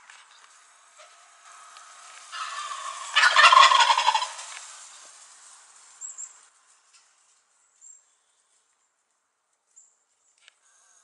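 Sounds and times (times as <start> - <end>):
turkey gobbling: 2.3 - 4.5.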